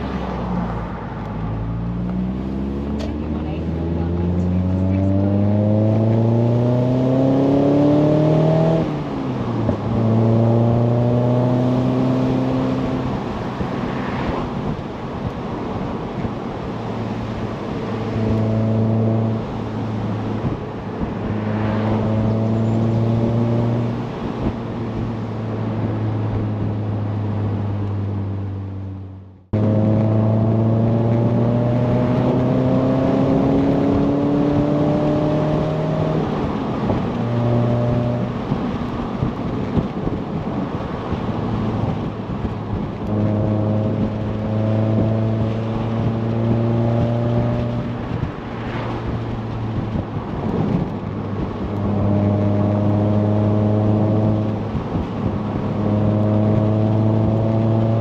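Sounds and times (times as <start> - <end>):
car engine accelerating: 0.0 - 58.0
road noise rushing: 0.0 - 58.0.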